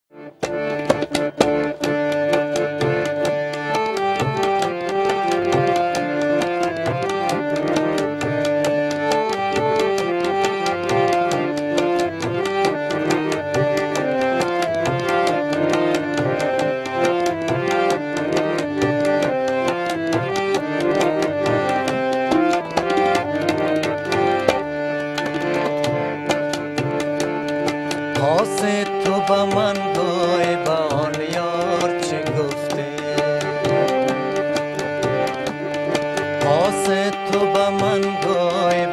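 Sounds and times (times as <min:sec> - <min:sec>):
harmonium melody: 0:00.1 - 0:38.9
tabla rhythm: 0:00.1 - 0:38.9.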